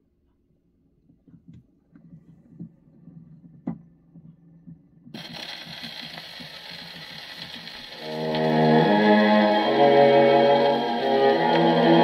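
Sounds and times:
record hiss and crackle: 0:00.2 - 0:12.0.

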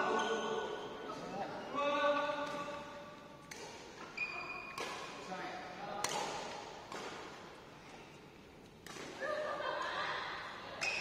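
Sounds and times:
badminton racket hitting shuttlecock: 0:02.4 - 0:05.3, 0:06.0 - 0:07.5.

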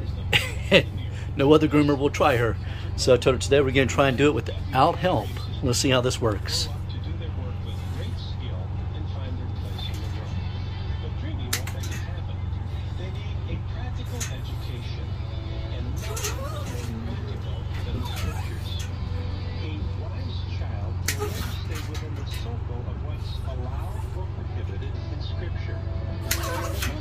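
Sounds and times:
low machine hum: 0:00.0 - 0:27.0.

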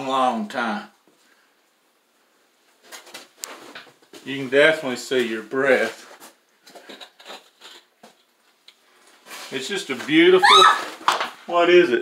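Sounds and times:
faint scuffing and rustling: 0:02.6 - 0:07.0, 0:07.7 - 0:11.5.

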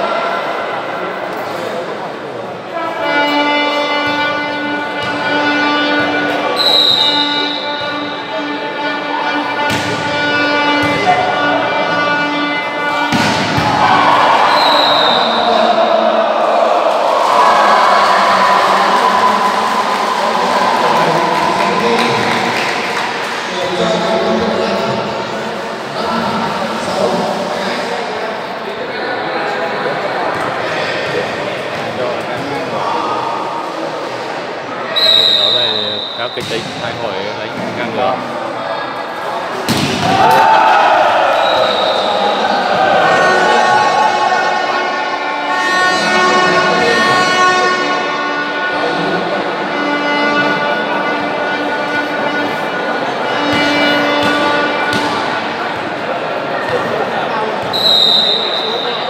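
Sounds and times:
crowd voices and talk: 0:00.0 - 0:59.0
referee whistle blasts: 0:06.5 - 0:08.1, 0:12.8 - 0:15.6, 0:34.9 - 0:36.6, 0:41.3 - 0:42.3, 0:57.7 - 0:59.0
hard ball strike: 0:09.6 - 0:11.2, 0:13.0 - 0:13.8, 0:36.4 - 0:36.8, 0:39.7 - 0:40.2, 0:53.5 - 0:55.3.

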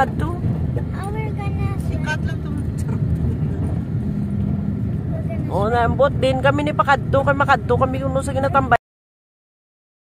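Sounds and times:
car engine and road rumble: 0:00.0 - 0:08.8.

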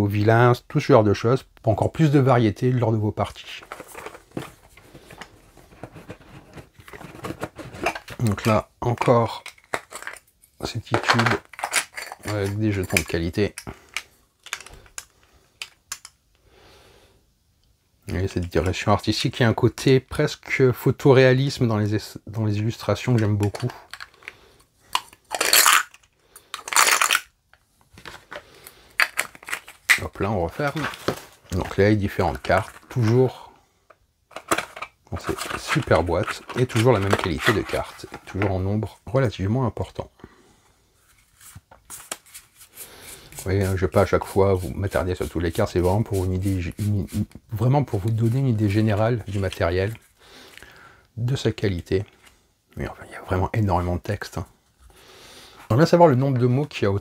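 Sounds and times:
plastic cards sliding: 0:03.6 - 0:08.6, 0:27.9 - 0:31.8, 0:34.4 - 0:38.4.

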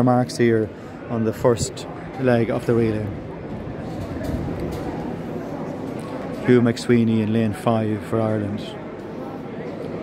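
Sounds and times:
murmur of distant spectators: 0:00.0 - 0:10.0.

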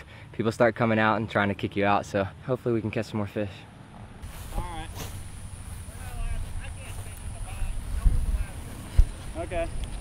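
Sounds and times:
wind rumbling on microphone: 0:04.7 - 0:10.0
microphone handling bumps: 0:08.0 - 0:10.0.

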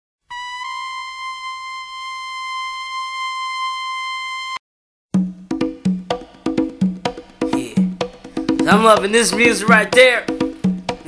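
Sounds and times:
high steady tone: 0:00.3 - 0:04.6.

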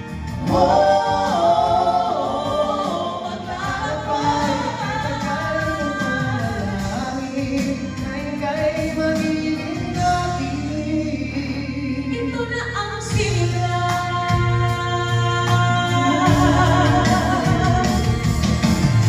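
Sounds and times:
people singing ballad in harmony: 0:00.0 - 0:19.0.

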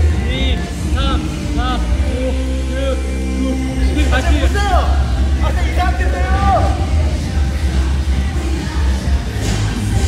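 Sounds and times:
person singing: 0:00.0 - 0:03.9
music with heavy bass line: 0:00.0 - 0:10.0.

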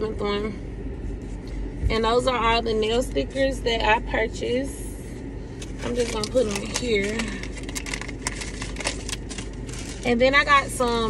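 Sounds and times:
low hum in car cabin: 0:00.0 - 0:11.0
packages being handled: 0:05.6 - 0:10.3.

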